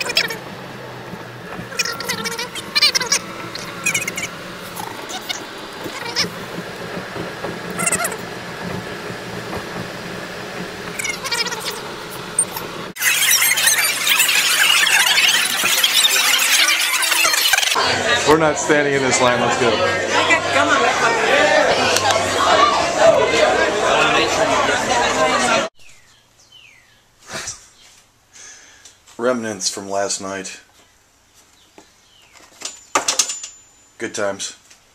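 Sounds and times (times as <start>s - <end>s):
crowd talking: 0.0s - 25.7s
short high-pitched sounds: 10.9s - 17.8s.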